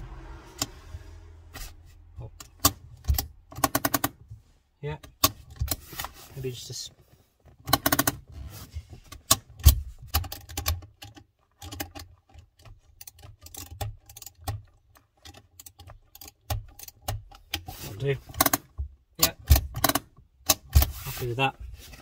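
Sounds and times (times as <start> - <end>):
spanner clicking on metal: 7.7 - 8.2, 18.3 - 20.8.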